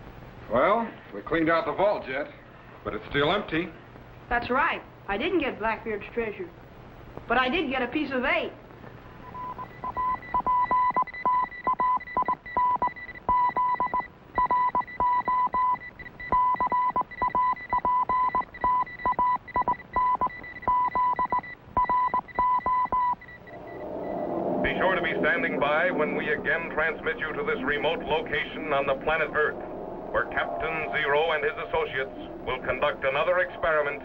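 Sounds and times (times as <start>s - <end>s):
morse code beeps: 9.2s - 25.6s
low swell of sound: 23.5s - 34.0s.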